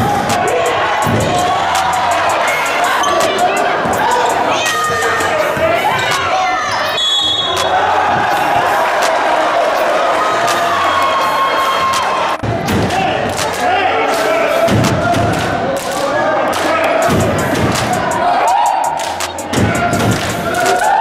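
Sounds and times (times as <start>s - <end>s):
hubbub of crowd voices: 0.0s - 21.0s.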